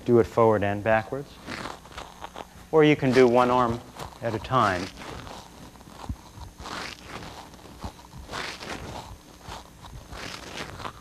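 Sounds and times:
clothing rustling: 1.4s - 11.0s.

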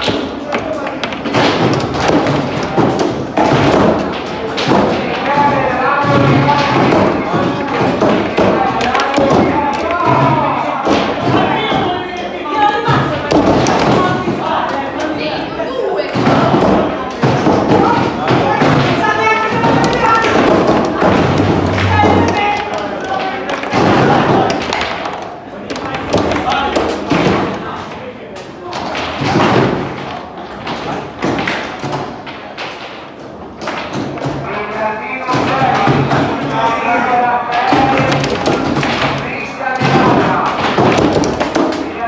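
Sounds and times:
rods banging: 16.2s - 24.9s
foosball ball knocks: 19.5s - 25.0s.

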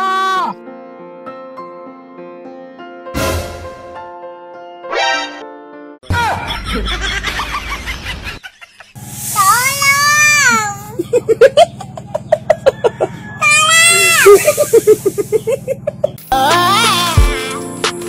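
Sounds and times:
rhythmic laughter: 6.2s - 9.0s, 10.9s - 13.0s, 14.2s - 16.2s
high wailing cry: 12.9s - 14.6s.

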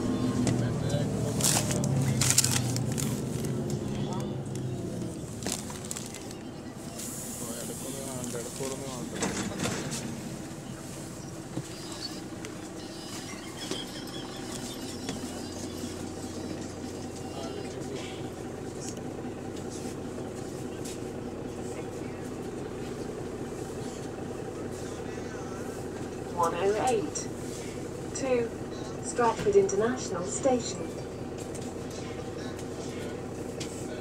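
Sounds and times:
bus engine drone: 0.0s - 34.0s
passengers chatting: 0.0s - 34.0s.

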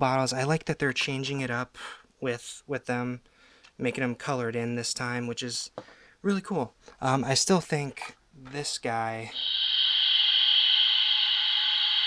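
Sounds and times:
electronic hiss from toy speaker: 9.2s - 12.0s.

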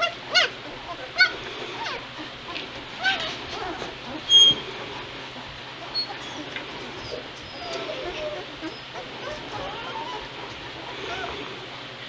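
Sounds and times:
puppies squealing and whining: 0.0s - 11.7s.

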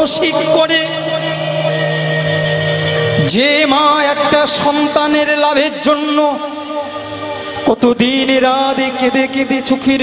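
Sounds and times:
harmonium sustained chord: 0.0s - 10.0s.

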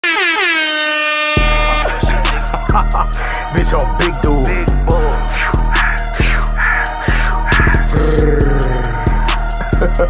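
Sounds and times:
air horn: 0.0s - 2.2s
hip-hop beat with deep bass: 1.4s - 10.0s.

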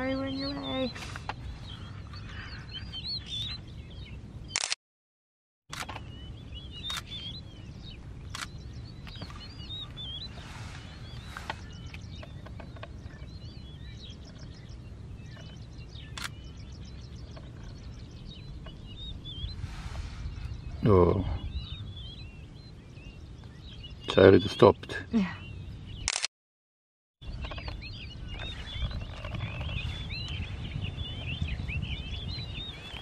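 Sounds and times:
small birds chirping: 0.0s - 4.8s, 5.7s - 26.3s, 27.2s - 33.0s
sharp clicks: 4.6s - 4.8s, 5.7s - 6.1s, 6.8s - 7.1s, 8.2s - 9.4s, 16.1s - 16.4s, 26.1s - 26.3s
steady low rumble: 5.7s - 24.4s.

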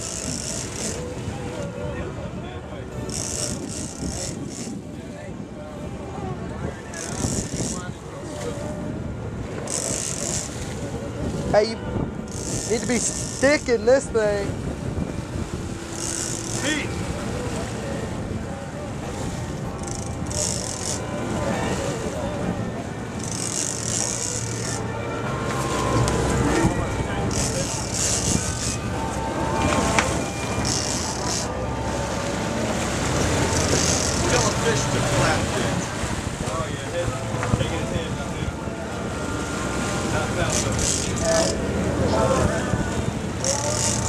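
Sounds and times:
boat engines humming: 0.0s - 44.0s
wind on microphone: 0.0s - 44.0s.

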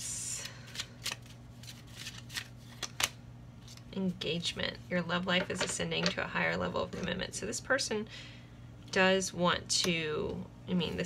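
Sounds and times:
cards shuffled by hand: 0.7s - 3.9s.

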